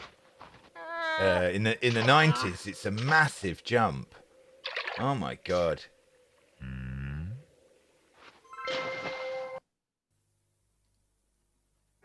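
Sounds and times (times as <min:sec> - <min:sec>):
man humming hmm: 0:06.6 - 0:07.4.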